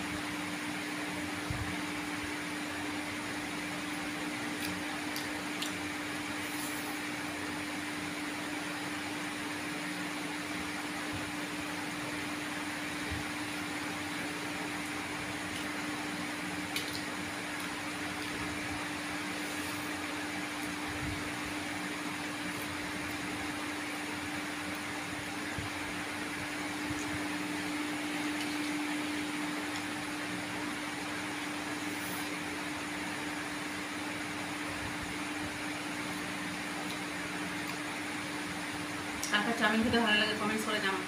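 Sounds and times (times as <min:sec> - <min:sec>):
motor hum: 0:00.0 - 0:40.0.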